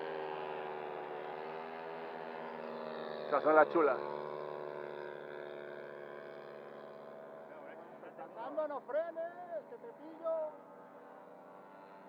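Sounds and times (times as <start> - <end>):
model plane engine: 0.0 - 12.0.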